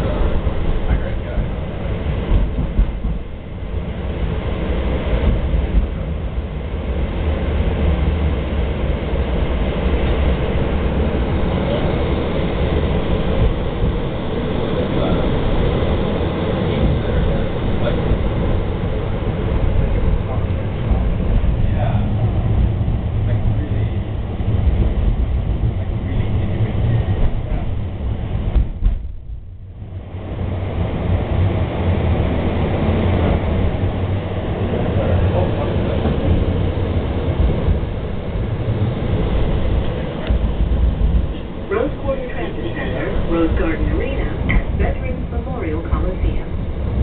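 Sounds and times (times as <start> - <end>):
train wheels rumbling on rails: 0.0 - 47.0.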